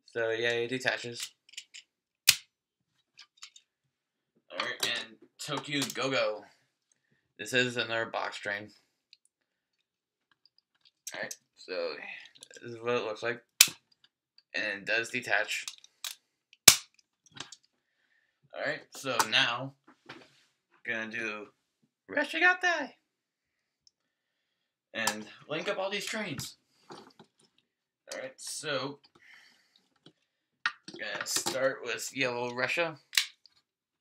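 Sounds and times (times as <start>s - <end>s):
faint plastic parts clicking: 1.2s - 1.9s, 3.0s - 3.9s, 9.1s - 11.6s, 15.6s - 17.9s, 26.8s - 28.3s, 29.0s - 31.7s
loud plastic snap: 2.3s - 2.5s, 16.6s - 17.0s
plastic toy parts clicking: 33.1s - 33.5s.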